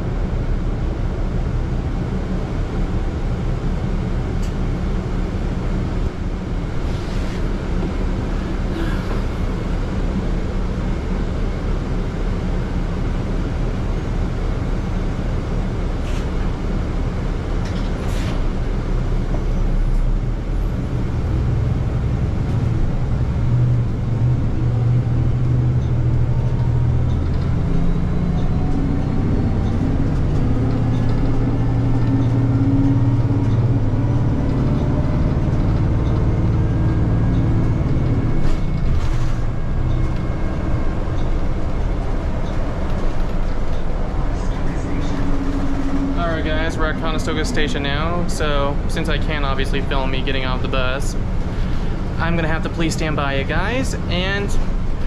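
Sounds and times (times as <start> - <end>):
bus drivetrain hum: 0.0 - 55.0.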